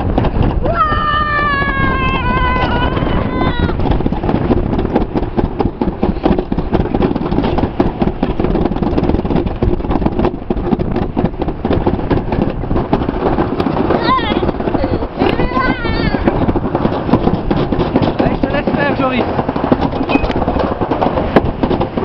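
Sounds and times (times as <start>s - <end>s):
sled rattling down metal track: 0.0s - 22.0s
child yelling: 0.6s - 3.8s, 13.9s - 16.3s.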